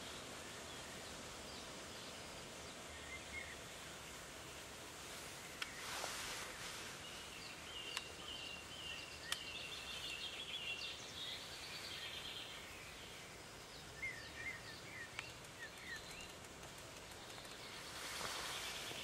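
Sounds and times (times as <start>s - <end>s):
river hiss: 0.0s - 19.0s
birdsong chirping: 5.4s - 19.0s
faint clicks: 5.6s - 5.8s, 7.9s - 8.2s, 9.2s - 9.6s, 14.9s - 18.3s.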